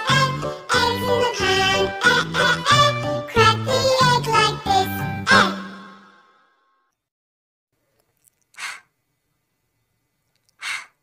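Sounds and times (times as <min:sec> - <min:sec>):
breathy puff of air: 0:08.6 - 0:08.9, 0:10.6 - 0:11.0.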